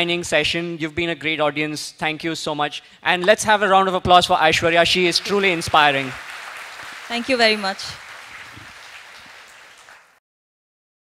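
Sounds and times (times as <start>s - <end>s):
audience applauding: 4.9s - 10.2s.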